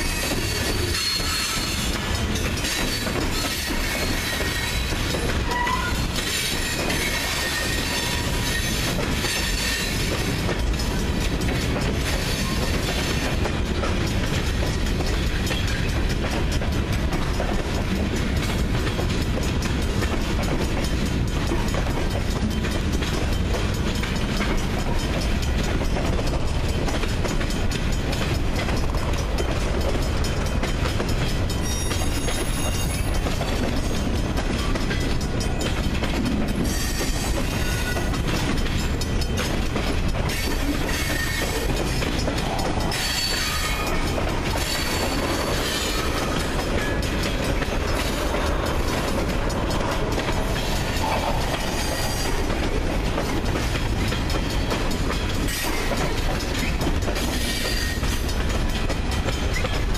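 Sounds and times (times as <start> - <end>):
freight train rumbling past: 0.0 - 59.9
wheels clacking over rail joints: 0.0 - 59.9.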